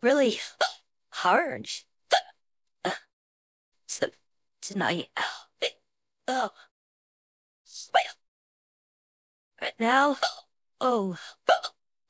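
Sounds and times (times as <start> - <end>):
woman hiccuping: 2.1 - 2.3, 11.5 - 11.8.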